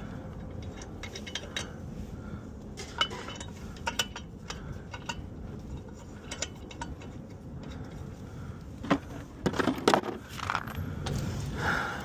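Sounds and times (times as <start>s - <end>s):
small metal parts clinking: 0.0s - 1.9s, 2.8s - 8.1s, 9.5s - 11.2s.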